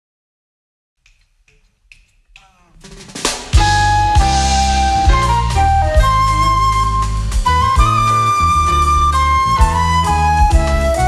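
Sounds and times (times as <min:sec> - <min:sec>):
finger snaps: 0:01.0 - 0:02.6
jazz band playing: 0:02.8 - 0:11.0.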